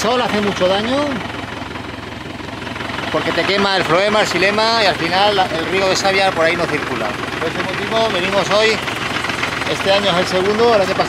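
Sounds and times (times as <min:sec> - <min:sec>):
tractor engine running: 0:00.0 - 0:11.0.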